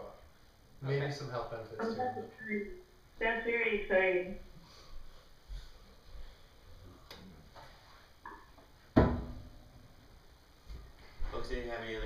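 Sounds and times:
thump on a table: 9.0 - 9.5.

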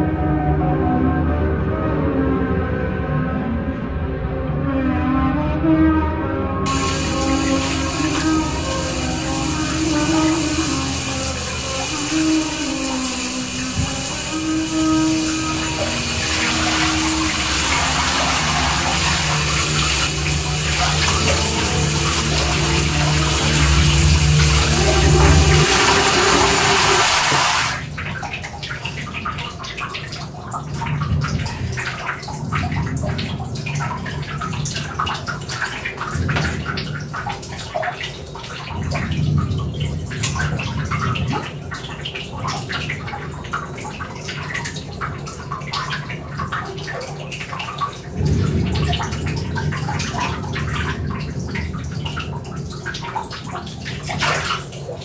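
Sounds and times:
running water rushing: 6.7 - 55.0
water splashing and trickling: 6.7 - 55.0.

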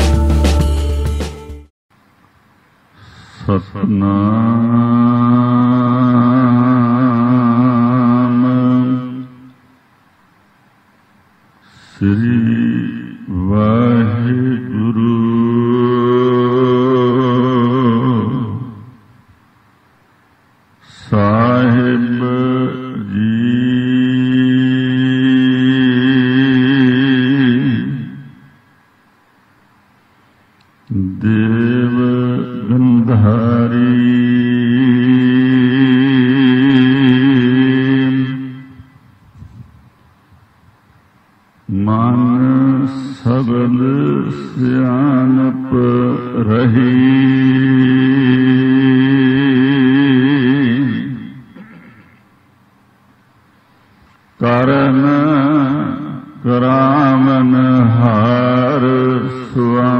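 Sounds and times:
low devotional chanting: 2.9 - 9.8, 11.6 - 19.4, 20.8 - 28.8, 30.8 - 40.0, 41.6 - 52.4, 53.7 - 59.9
steady drone: 41.7 - 52.4.

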